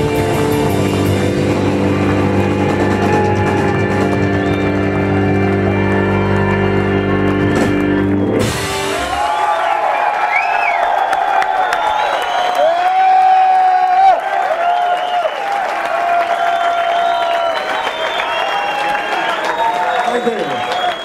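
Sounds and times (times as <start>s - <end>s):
audience clapping: 0.0s - 21.0s
audience whooping and shouting: 1.0s - 21.0s.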